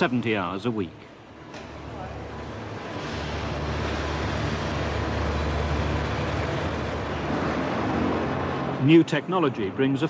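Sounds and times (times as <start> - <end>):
factory machinery rumbling: 1.1 - 9.0.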